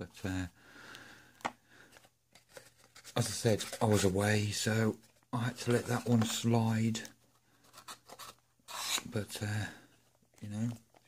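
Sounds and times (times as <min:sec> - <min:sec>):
scraping rub: 0:07.6 - 0:09.1.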